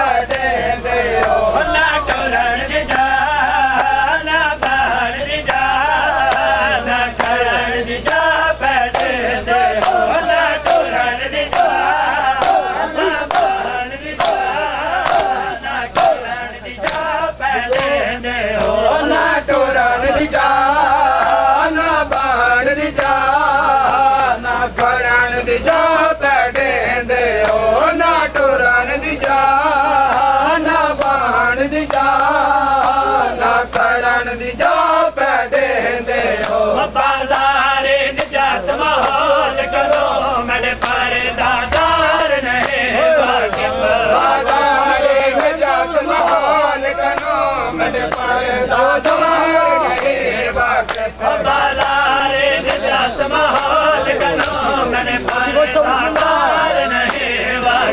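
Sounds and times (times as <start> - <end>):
men chanting: 0.0 - 57.9
men slapping chests: 1.2 - 18.9, 19.5 - 25.0, 27.4 - 27.7, 29.2 - 57.8.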